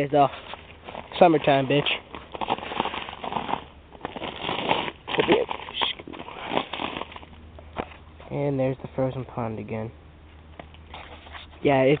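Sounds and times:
footsteps crunching through icy snow: 0.2s - 8.0s
twigs crackling and snapping: 0.8s - 8.0s.

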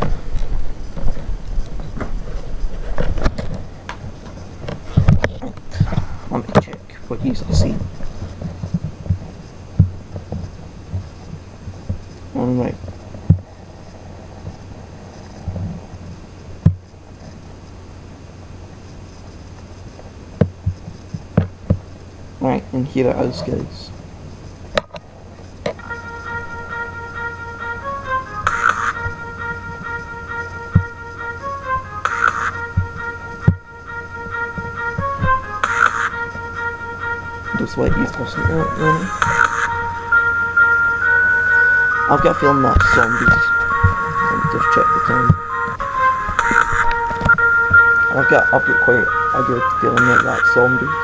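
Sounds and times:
dull low thumps: 0.0s - 12.1s, 25.0s - 50.1s
steady low hum: 0.0s - 51.0s
held synth notes: 21.2s - 51.0s.

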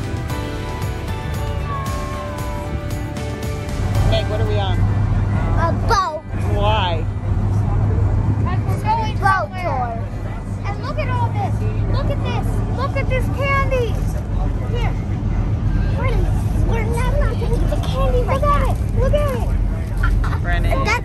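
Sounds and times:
ferry engine droning: 0.0s - 21.0s
children's excited voices: 16.0s - 19.6s.

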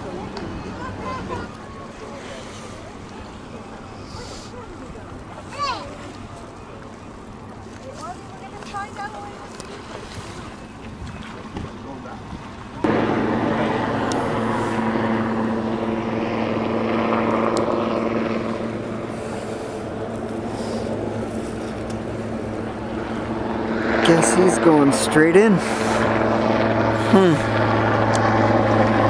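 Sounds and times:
faint outdoor background: 0.0s - 9.8s
engine drone: 12.7s - 29.0s.

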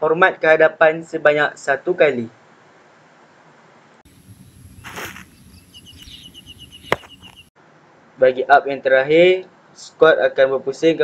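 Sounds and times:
bird chirping rapidly: 4.1s - 7.6s
shoe stamping on asphalt: 4.8s - 5.3s, 6.8s - 7.5s.

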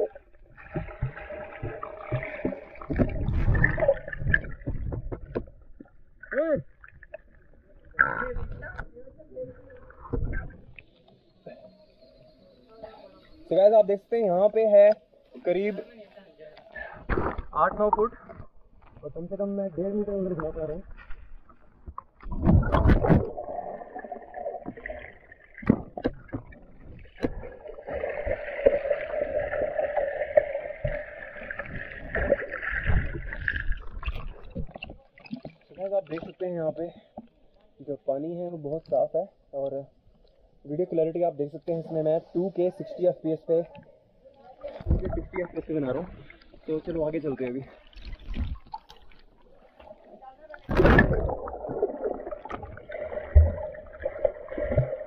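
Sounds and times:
clicks and gurgles: 0.0s - 9.0s, 16.6s - 19.1s, 20.3s - 37.4s, 47.8s - 55.0s
underwater knocks: 0.6s - 5.9s, 21.8s - 23.5s, 25.6s - 27.8s, 30.4s - 35.6s, 44.8s - 45.6s
muffled underwater rumble: 7.4s - 13.5s.

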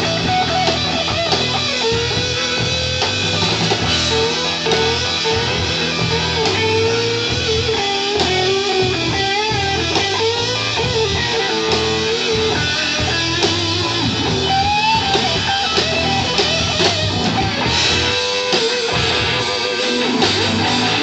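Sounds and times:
bent guitar melody line: 0.0s - 21.0s
rock band playing live: 0.0s - 21.0s.

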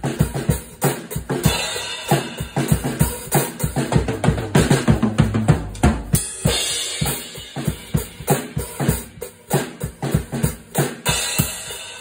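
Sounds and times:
drum hits: 3.7s - 8.5s.

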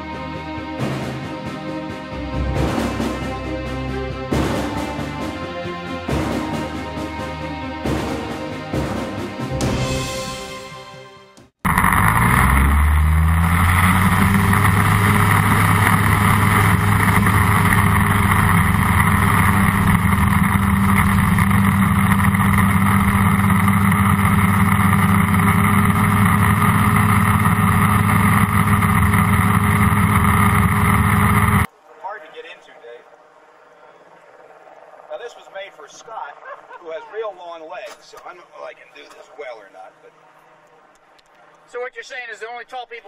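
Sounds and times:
theme music: 0.0s - 30.5s
ultralight engine and propeller: 11.6s - 41.6s.

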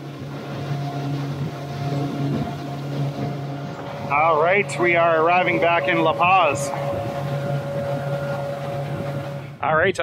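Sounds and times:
motorboat engine droning: 0.0s - 10.0s
water noise: 0.0s - 10.0s
wind: 0.0s - 10.0s.

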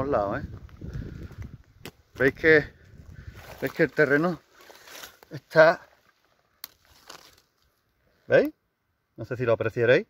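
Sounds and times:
soil crumbling between fingers: 3.1s - 7.8s.

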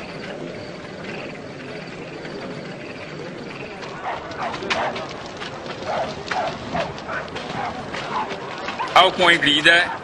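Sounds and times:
dog barking: 4.0s - 5.1s, 5.8s - 10.0s.

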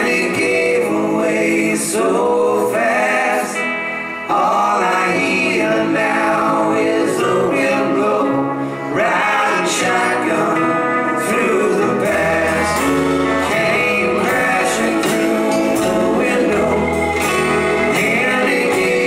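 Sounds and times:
live band playing country rock: 0.0s - 19.0s
low held bass notes: 4.2s - 19.0s.

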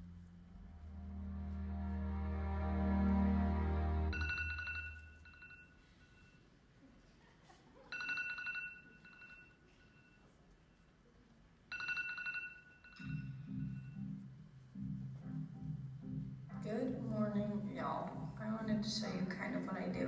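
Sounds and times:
low-pitched sound: 0.0s - 4.6s.

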